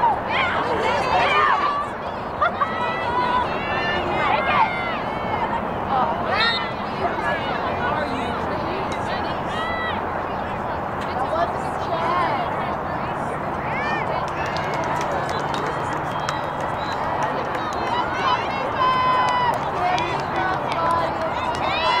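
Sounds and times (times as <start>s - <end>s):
players and spectators shouting: 0.0s - 10.9s, 13.6s - 22.0s.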